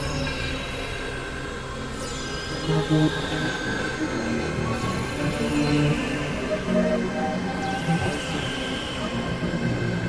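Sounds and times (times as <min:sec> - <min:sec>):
electronic synthesizer drones: 0:00.0 - 0:10.0.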